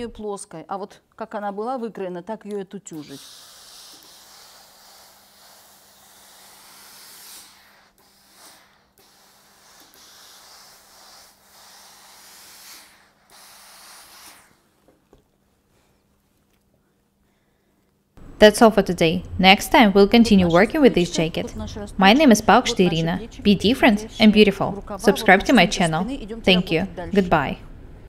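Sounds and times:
steam iron hissing: 2.9s - 14.8s.

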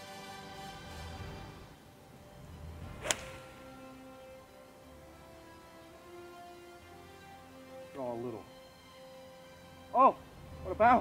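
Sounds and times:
soft background music: 0.0s - 11.0s
golf club swish: 2.8s - 3.9s
golf club striking ball: 2.9s - 3.8s.

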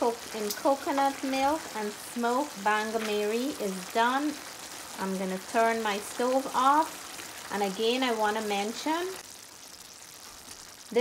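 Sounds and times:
woman speaking: 0.0s - 4.4s, 5.0s - 6.9s, 7.5s - 9.2s
faint sizzle in a pan: 0.0s - 11.0s.

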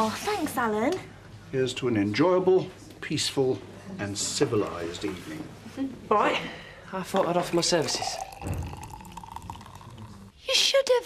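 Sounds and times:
champagne pouring into glass: 7.3s - 10.4s.

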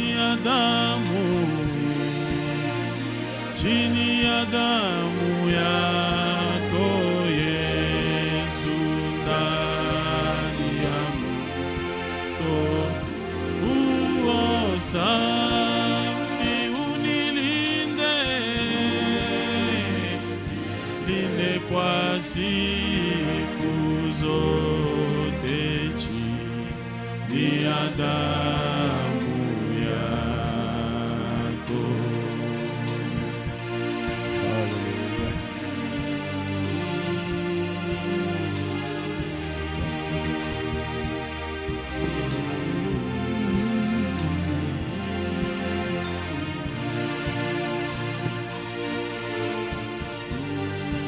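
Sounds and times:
man singing into a microphone: 0.0s - 2.5s, 3.5s - 11.6s, 12.4s - 20.3s, 20.9s - 32.9s, 42.0s - 45.0s
sustained accompaniment: 0.0s - 51.0s.

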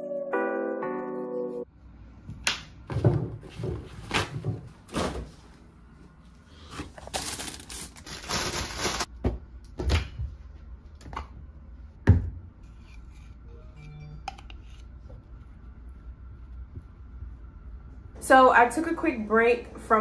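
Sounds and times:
background music: 0.0s - 1.7s.

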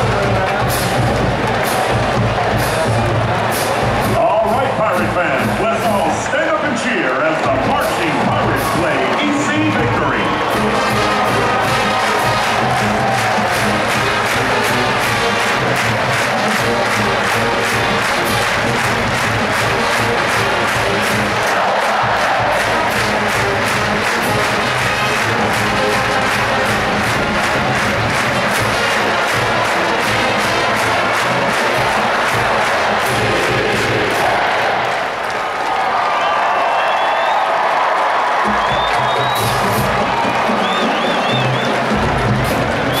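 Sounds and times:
steady drum beat: 0.0s - 35.0s, 38.4s - 43.0s
marching band playing: 0.0s - 36.0s, 37.6s - 43.0s
stadium crowd cheering: 0.0s - 43.0s.

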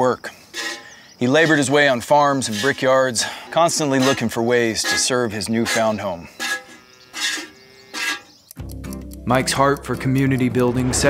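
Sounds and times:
soft background music: 8.6s - 11.0s.

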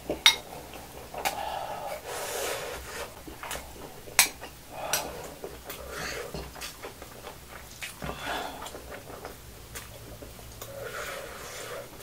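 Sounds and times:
scraping and chewing: 0.5s - 12.0s.

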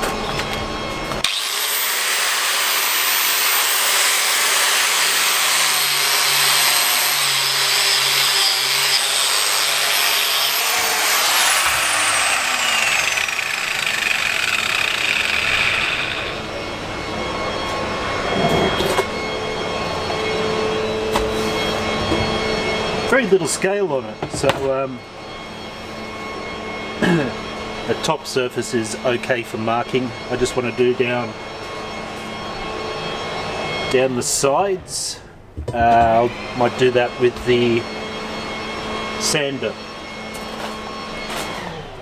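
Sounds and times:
angle grinder grinding steel: 1.2s - 16.9s.

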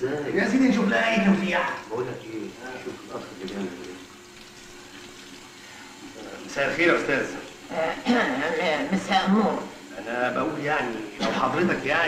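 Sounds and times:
tap water running into washbasin: 0.0s - 12.0s.

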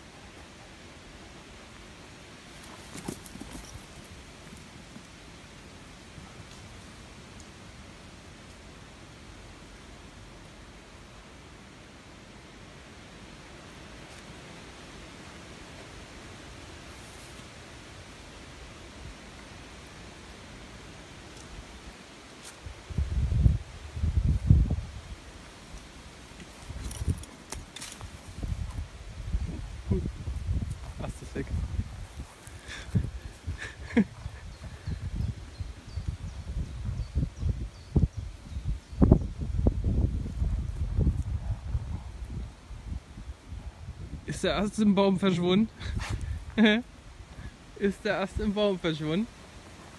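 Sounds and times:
faint outdoor hiss: 0.0s - 49.9s
wind buffeting microphone: 22.7s - 25.2s, 28.0s - 44.3s.

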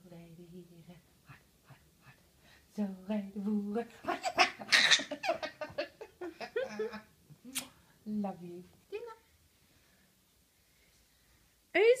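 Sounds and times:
toddler laughing: 4.1s - 7.0s.

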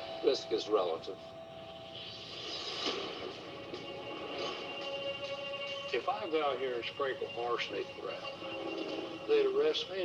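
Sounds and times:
faint held music tone: 0.0s - 2.3s, 3.4s - 10.0s.

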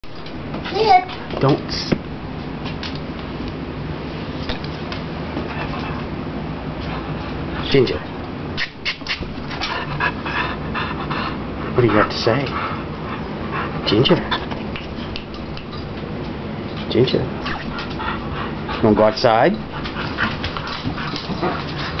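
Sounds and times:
dog panting: 8.9s - 15.3s, 17.4s - 22.0s.

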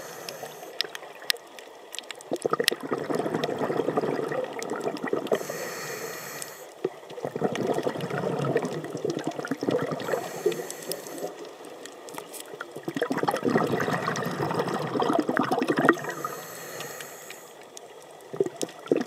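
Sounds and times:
hissing regulator inhalations: 0.0s - 0.8s, 5.3s - 6.8s, 10.0s - 11.4s, 16.0s - 17.6s
rush of exhaled bubbles: 2.3s - 5.5s, 6.8s - 11.4s, 12.7s - 16.4s, 18.3s - 19.0s.

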